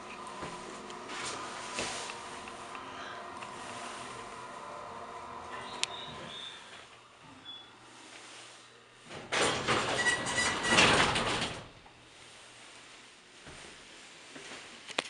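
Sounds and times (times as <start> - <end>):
elevator running hum: 0.0 - 14.4
elevator doors rattling open: 9.1 - 11.8.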